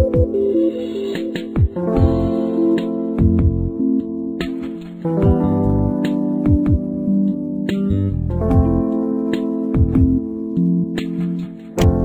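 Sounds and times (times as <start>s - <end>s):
held keyboard chords: 0.0s - 12.0s.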